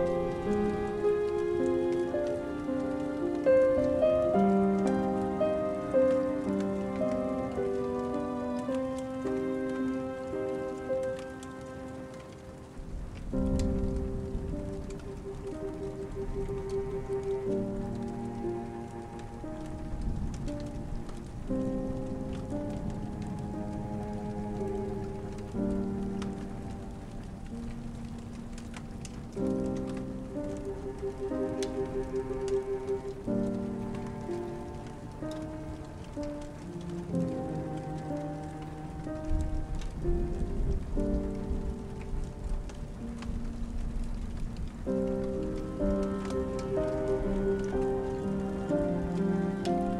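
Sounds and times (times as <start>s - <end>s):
slow instrumental music: 0.0s - 49.9s
steady rain falling: 0.0s - 49.9s.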